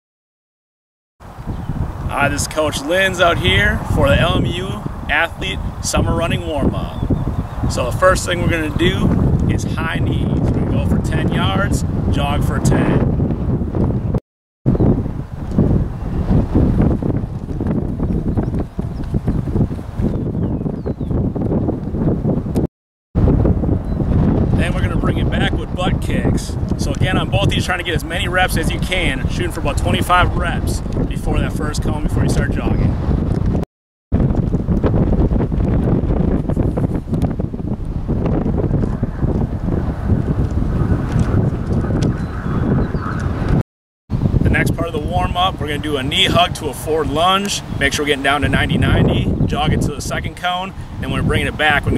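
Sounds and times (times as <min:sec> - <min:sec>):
wind buffeting the microphone: 0:01.2 - 0:51.9.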